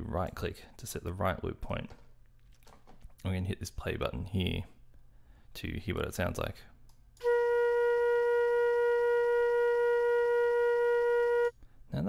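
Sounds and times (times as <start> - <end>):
steady flute note: 7.2 - 11.6.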